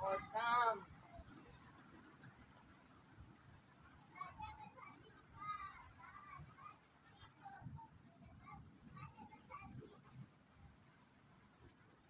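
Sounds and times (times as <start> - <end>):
distant voices: 0.0 - 11.8.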